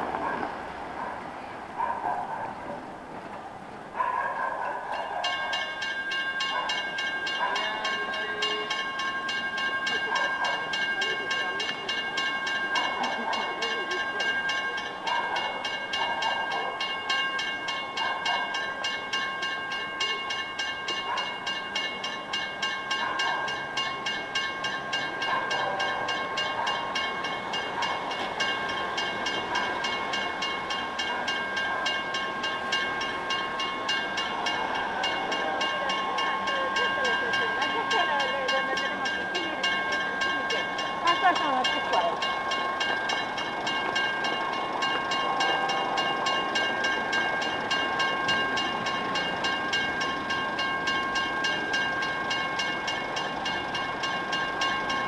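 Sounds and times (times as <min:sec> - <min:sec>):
level-crossing warning bell ringing: 0:04.8 - 0:55.0.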